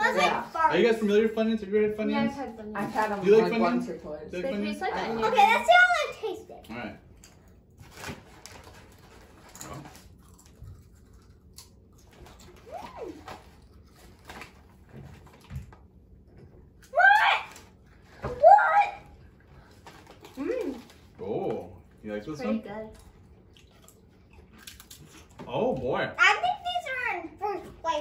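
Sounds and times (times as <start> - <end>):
chip bag rustling: 7.8 - 11.0
potato chips crunching: 7.9 - 14.6, 23.6 - 25.3.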